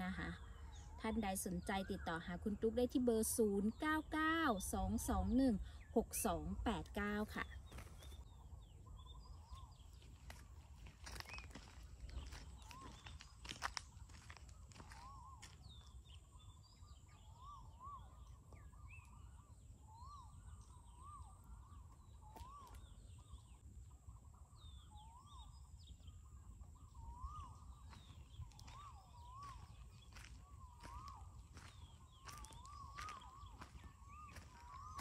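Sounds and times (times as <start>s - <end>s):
high bird chirps: 11.0s - 23.6s, 24.4s - 35.0s.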